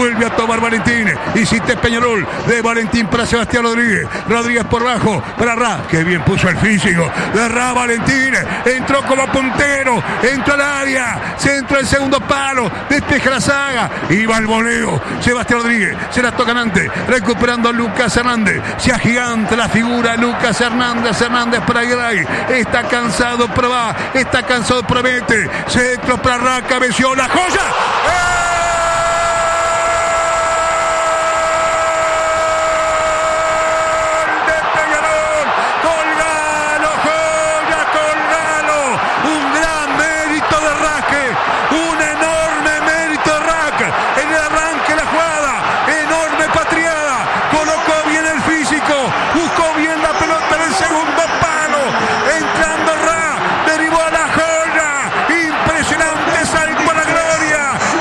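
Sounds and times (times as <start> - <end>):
commentator shouting goal: 0.0 - 58.0
excited commentator shouting: 0.0 - 58.0.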